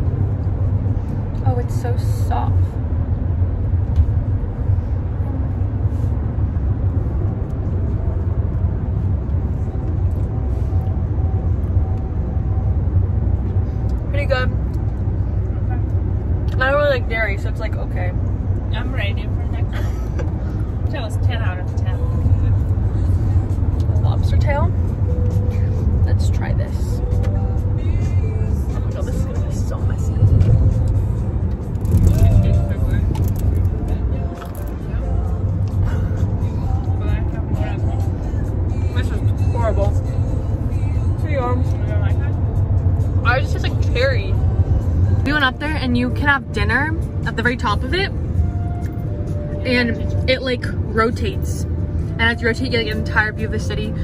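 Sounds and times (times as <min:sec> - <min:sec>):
car engine and tyres rumbling: 0:00.0 - 0:54.0
music: 0:21.6 - 0:54.0.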